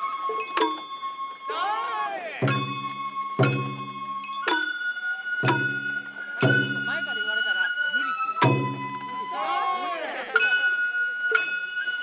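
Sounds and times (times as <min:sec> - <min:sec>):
bamboo flute: 0:00.0 - 0:12.0
people's voices: 0:05.0 - 0:12.0.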